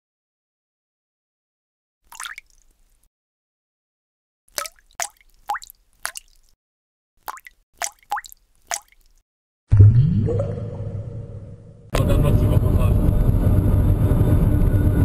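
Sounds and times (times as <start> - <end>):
water drips and plops: 2.0 - 3.1, 4.5 - 6.6, 7.2 - 9.2.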